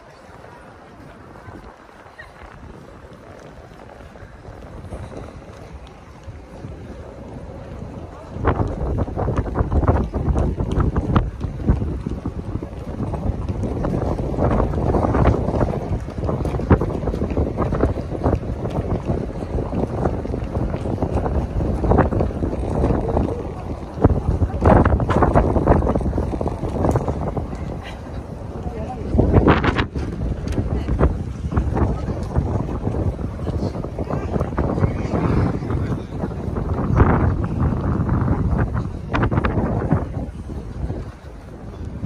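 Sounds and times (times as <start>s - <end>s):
murmur of passers-by: 0.0s - 42.0s
wind buffeting microphone: 0.0s - 42.0s.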